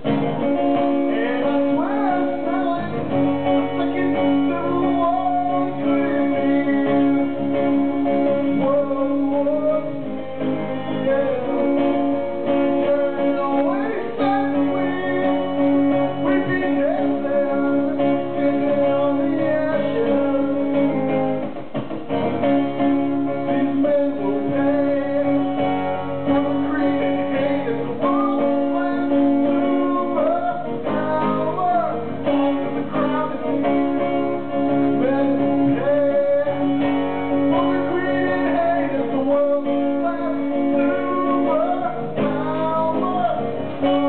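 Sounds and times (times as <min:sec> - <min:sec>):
man singing into a microphone: 0:00.0 - 0:21.3, 0:22.4 - 0:44.0.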